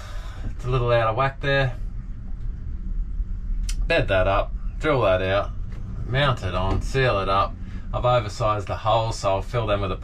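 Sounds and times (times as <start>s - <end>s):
low rumble: 0.0s - 10.0s
man speaking: 0.6s - 1.8s, 3.7s - 10.0s.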